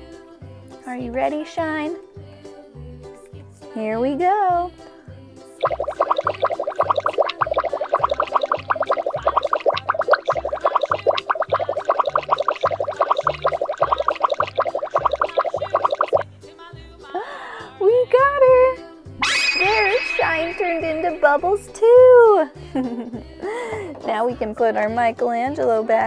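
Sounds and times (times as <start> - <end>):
children's music with bass beat: 2.8 - 26.0
rapid bubbling sound effect: 5.6 - 16.2, 19.2 - 21.5.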